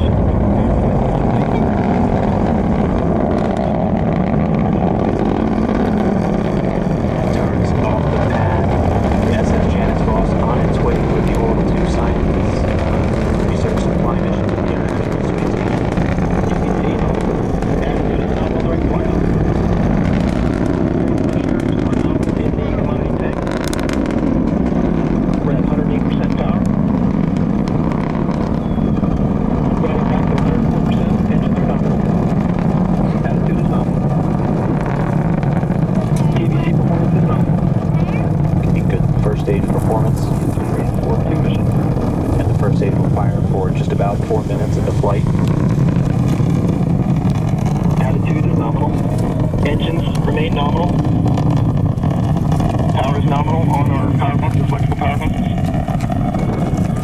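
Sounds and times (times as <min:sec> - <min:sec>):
distant rocket launch rumble: 0:00.0 - 0:57.0.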